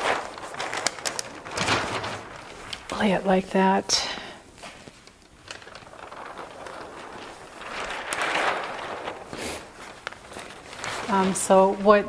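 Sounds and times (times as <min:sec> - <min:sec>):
newsprint rustling and crinkling: 0:00.0 - 0:12.0.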